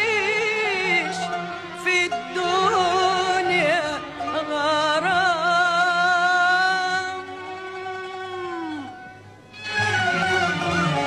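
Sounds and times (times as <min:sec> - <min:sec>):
orchestral music: 0:08.3 - 0:11.0.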